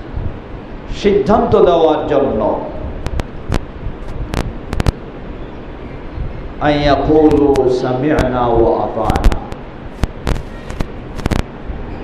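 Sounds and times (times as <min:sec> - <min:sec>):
low steady background noise: 0:00.0 - 0:12.0
sharp cracks and pops: 0:03.0 - 0:05.0, 0:09.0 - 0:11.5.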